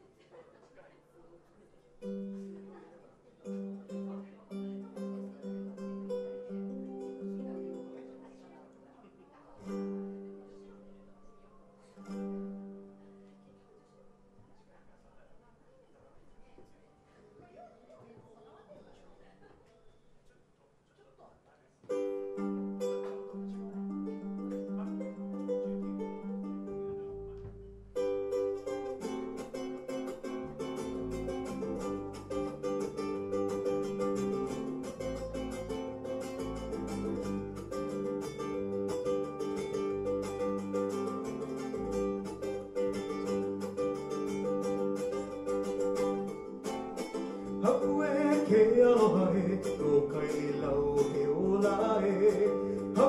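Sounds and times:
ukulele strumming: 2.0 - 2.8, 3.4 - 8.9, 9.6 - 11.0, 11.9 - 13.2, 21.9 - 53.0
electric bass: 30.1 - 53.0.

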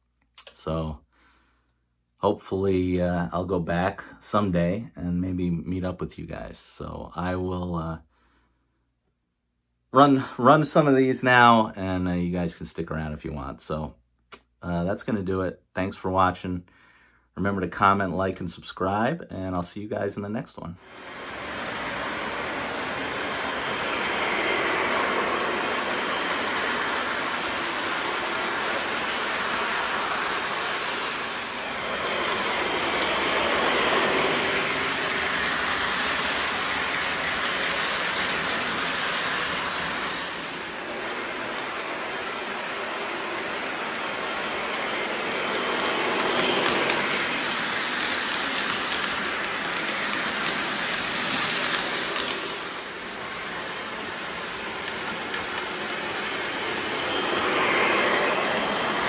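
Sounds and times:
model train wheels rumbling on rails: 20.8 - 59.0.

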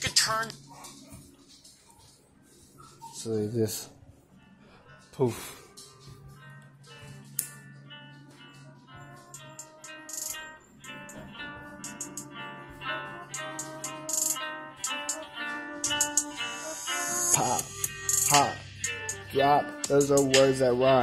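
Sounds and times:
instrumental beat with plucked melody: 6.0 - 21.0.

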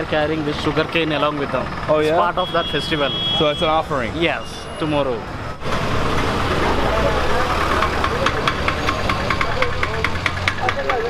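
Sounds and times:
vehicle engines running: 0.0 - 11.0
crowd voices: 3.4 - 11.0
steady tapping: 7.7 - 11.0.

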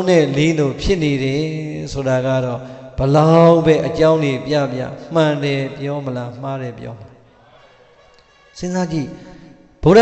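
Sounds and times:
man chanting: 0.0 - 7.3.

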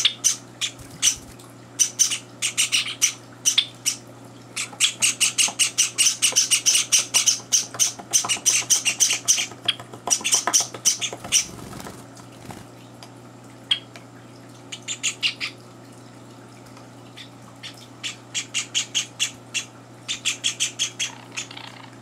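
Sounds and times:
chicks giving high begging chirps: 0.0 - 4.0.

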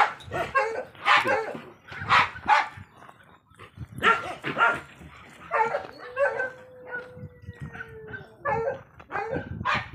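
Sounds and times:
dog barking: 0.0 - 2.7, 4.0 - 4.8, 5.5 - 6.5, 8.4 - 9.9.

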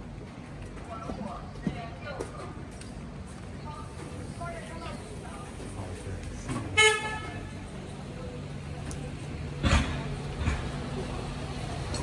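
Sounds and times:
street background noise: 0.0 - 12.0
vehicle horn beep: 6.8 - 7.5.

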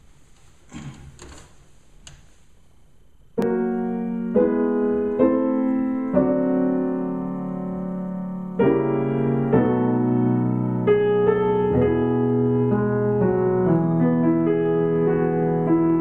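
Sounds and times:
piano chords ringing: 3.2 - 16.0.

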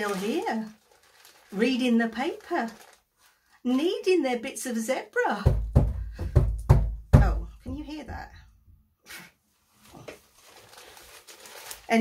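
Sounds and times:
low thumps: 5.5 - 8.4.

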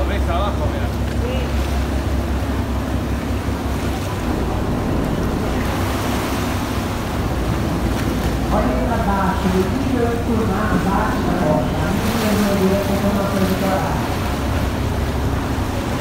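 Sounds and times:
boat engine rumble: 0.0 - 16.0
water washing along hull: 0.0 - 16.0
wind on microphone: 3.6 - 12.1.

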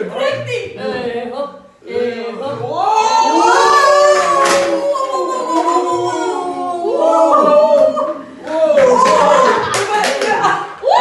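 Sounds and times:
group cheering and laughing: 2.6 - 11.0
hand clapping: 8.5 - 10.7.

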